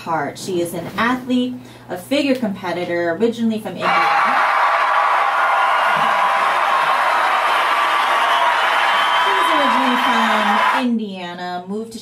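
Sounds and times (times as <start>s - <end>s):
crowd cheering: 3.8s - 10.9s.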